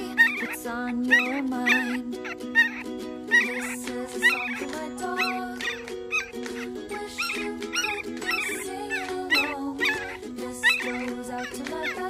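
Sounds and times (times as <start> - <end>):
pop song chords: 0.0 - 12.0
puppy whimpering: 0.0 - 12.0.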